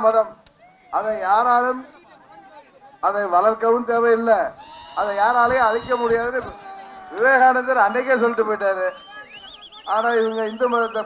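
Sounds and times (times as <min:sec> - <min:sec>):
man calling over microphone: 0:00.0 - 0:11.0.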